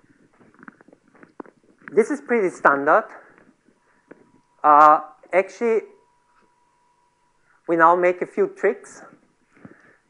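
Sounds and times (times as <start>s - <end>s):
person speaking: 1.8s - 3.4s, 4.6s - 6.0s, 7.7s - 9.2s.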